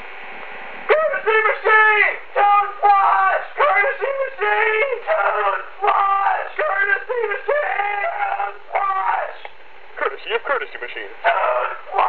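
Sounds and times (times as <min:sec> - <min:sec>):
person talking over telephone: 0:10.0 - 0:12.0.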